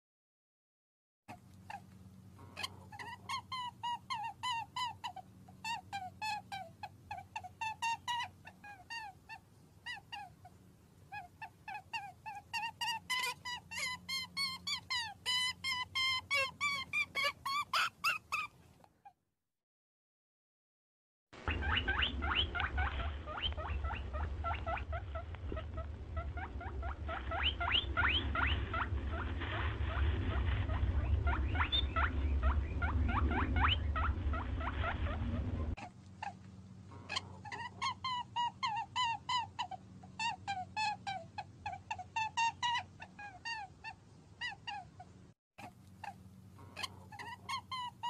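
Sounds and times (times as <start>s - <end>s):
small animals squeaky chirps: 1.3s - 19.2s, 21.5s - 36.4s, 37.0s - 48.0s
heavy low rumble: 21.4s - 35.8s.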